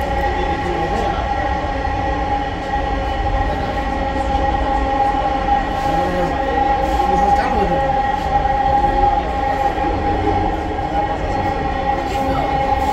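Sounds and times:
train rumble: 0:00.0 - 0:12.9
train whine: 0:00.0 - 0:12.9.

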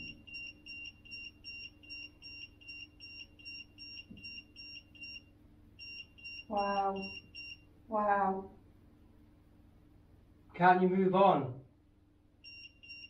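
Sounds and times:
electronic detector beeping rapidly: 0:00.0 - 0:07.6, 0:12.4 - 0:13.0.

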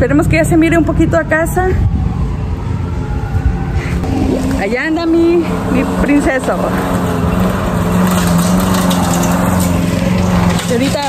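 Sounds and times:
lawn mower engine running: 0:04.0 - 0:11.0.

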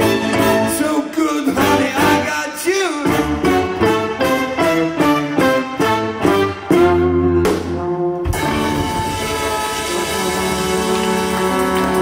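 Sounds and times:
horn stabs: 0:00.0 - 0:12.0.

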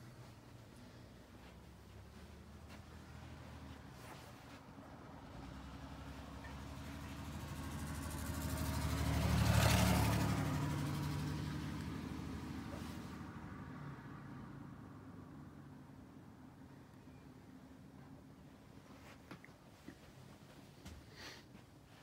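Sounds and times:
vehicle driving past: 0:00.2 - 0:15.8.

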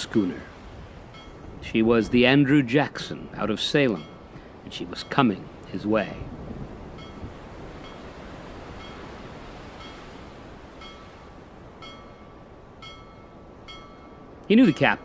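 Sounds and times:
wind and sea rushing: 0:00.0 - 0:15.0
metallic chime tings: 0:01.2 - 0:01.4, 0:07.0 - 0:08.0, 0:10.8 - 0:11.1, 0:11.8 - 0:15.0.

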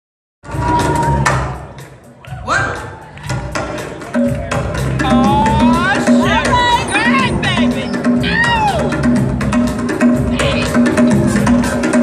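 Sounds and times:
conga drums: 0:00.4 - 0:12.0.

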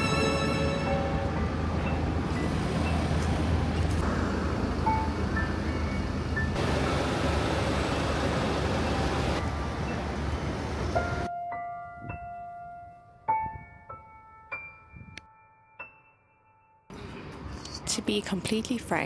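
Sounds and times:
city traffic rumble: 0:00.0 - 0:11.3, 0:16.9 - 0:19.0
soft background music: 0:11.0 - 0:16.9.

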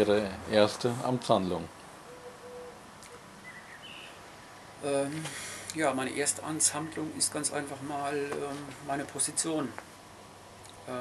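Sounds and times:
background hiss: 0:00.0 - 0:11.0
faint higher bird chirp: 0:02.0 - 0:04.8
low hooting bird call: 0:02.0 - 0:04.8.

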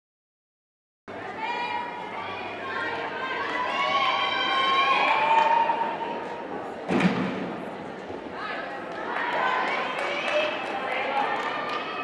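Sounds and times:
voices echoing in a hall: 0:01.1 - 0:12.0
thud: 0:06.9 - 0:07.6.

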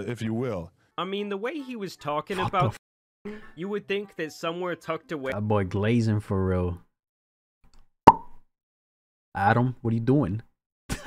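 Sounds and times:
short pop: 0:08.1 - 0:08.4.

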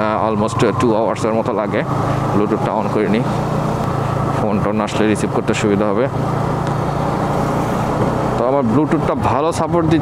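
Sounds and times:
motorcycle engine cruising: 0:00.0 - 0:10.0
road and wind noise: 0:00.0 - 0:10.0.

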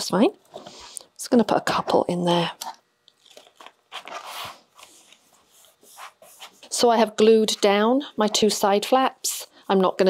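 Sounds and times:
paper rustling: 0:03.2 - 0:06.7.

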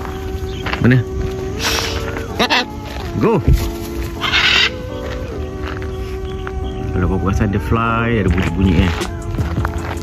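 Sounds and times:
background music: 0:00.0 - 0:10.0
macaw harsh squawk: 0:01.6 - 0:02.8, 0:04.2 - 0:05.3.

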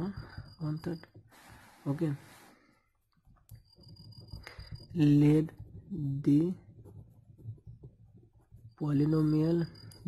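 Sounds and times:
person speaking: 0:00.0 - 0:02.5, 0:04.5 - 0:07.8, 0:08.6 - 0:10.0
pen scratching on paper: 0:03.6 - 0:10.0.

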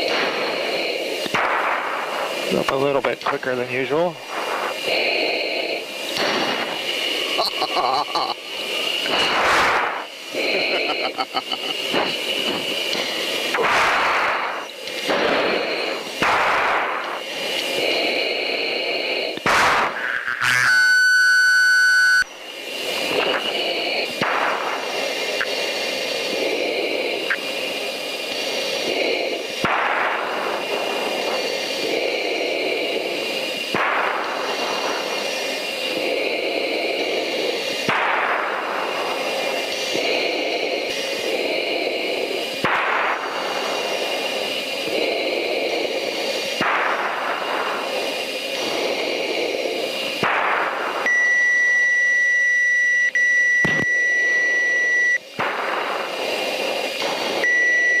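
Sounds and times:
surges of rushing noise: 0:00.0 - 0:20.2, 0:22.3 - 0:51.1, 0:55.2 - 0:58.0
loud steady electronic tone: 0:00.0 - 0:37.6, 0:50.9 - 0:56.0, 0:56.6 - 0:58.0
cockpit hiss with whining tones: 0:00.0 - 0:58.0
person laughing: 0:07.4 - 0:08.5, 0:10.4 - 0:12.1.

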